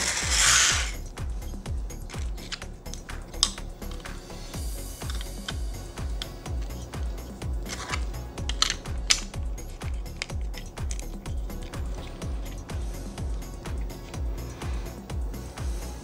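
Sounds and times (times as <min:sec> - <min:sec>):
background music with low beat: 0:00.0 - 0:16.0
plastic bricks clicking and rattling: 0:02.1 - 0:04.2, 0:07.6 - 0:12.7.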